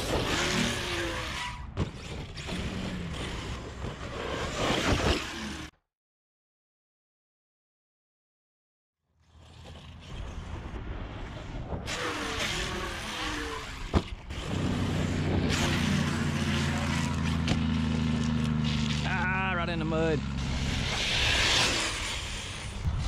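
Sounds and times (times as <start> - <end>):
motor running over dirt: 0.0 - 5.8, 9.2 - 23.0
wind: 0.0 - 5.8, 9.0 - 23.0.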